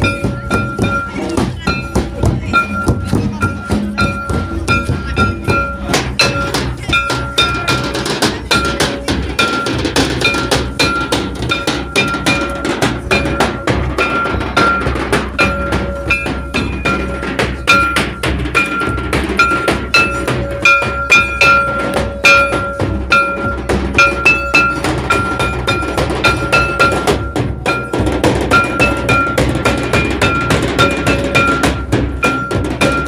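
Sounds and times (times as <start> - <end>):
rapid hand-drum strokes: 0.0 - 33.0.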